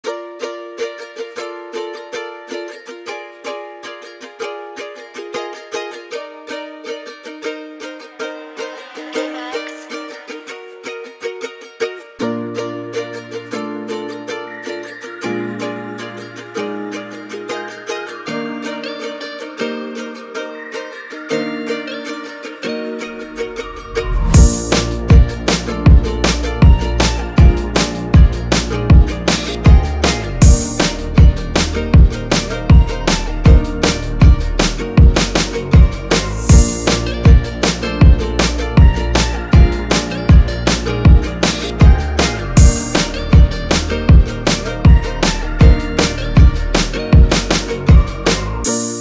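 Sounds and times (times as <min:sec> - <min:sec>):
plucked ukulele chords: 0:00.0 - 0:49.0
low bass notes: 0:23.8 - 0:48.7.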